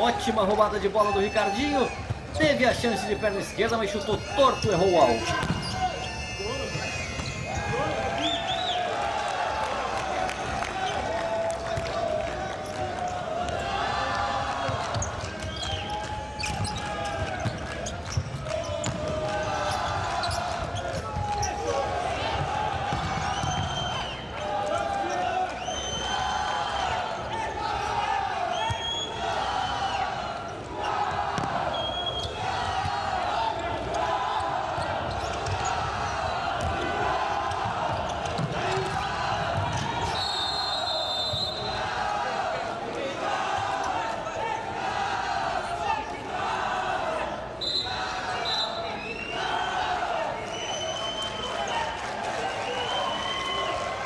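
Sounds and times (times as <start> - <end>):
players shouting: 0.0 - 50.9
referee's whistle: 1.0 - 8.9, 23.2 - 24.4, 25.5 - 27.0, 28.5 - 30.0, 31.6 - 32.4, 39.8 - 42.0, 47.6 - 51.8, 52.5 - 53.8
ball kicked and bouncing: 5.4 - 5.8, 18.2 - 19.2, 22.4 - 23.7, 31.4 - 31.6.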